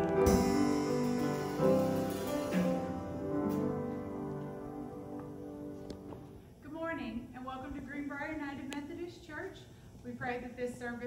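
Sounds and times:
music: 0.0s - 6.4s
woman speaking into a microphone: 6.6s - 11.0s.

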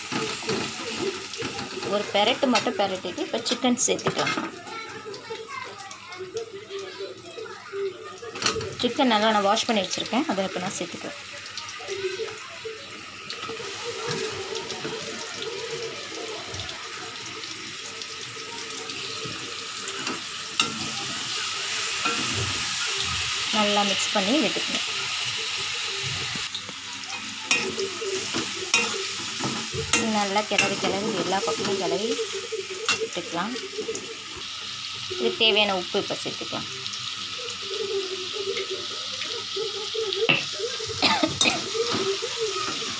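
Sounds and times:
chicken sizzling in oil: 0.0s - 42.9s
faint background voices: 0.0s - 42.9s
spatula clinking against pan: 27.1s - 31.8s, 32.9s - 33.2s.

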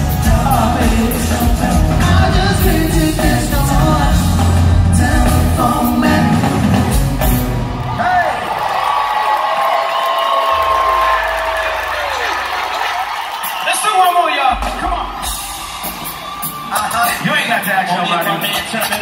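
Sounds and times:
band music with heavy bass: 0.0s - 8.5s, 10.5s - 19.0s
crowd whooping: 7.4s - 18.3s.

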